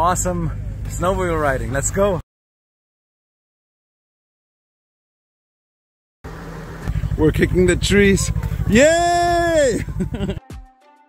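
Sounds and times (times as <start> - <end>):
snowmobile engine running: 6.3 - 10.4.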